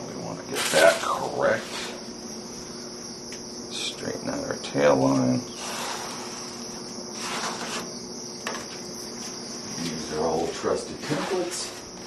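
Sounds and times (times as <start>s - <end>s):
pencil scraping on foam: 5.6s - 7.9s.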